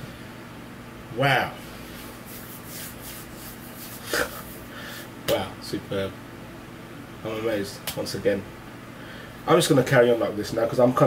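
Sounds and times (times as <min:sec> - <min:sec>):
hand rustling and rubbing: 0:01.9 - 0:04.7.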